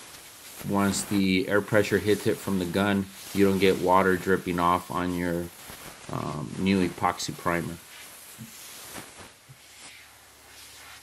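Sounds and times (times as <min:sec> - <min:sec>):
air blow gun hissing: 0:00.0 - 0:11.0.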